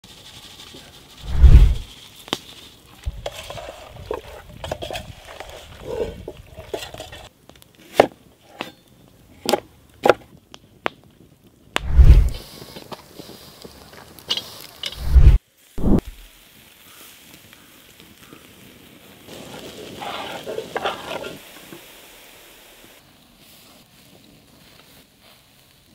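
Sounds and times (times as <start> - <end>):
onion sizzling in hot pan: 0.1 - 7.3, 11.8 - 25.9.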